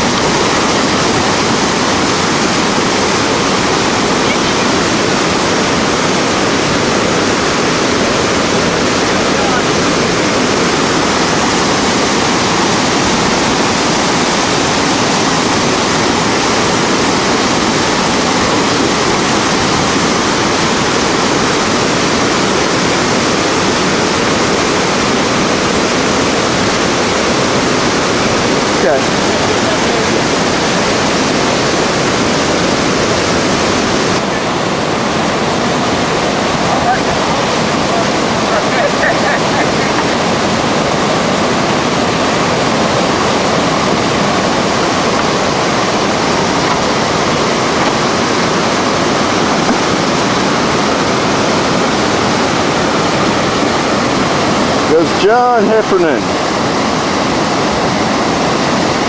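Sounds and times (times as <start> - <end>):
water rushing over rocks: 0.0 - 59.0.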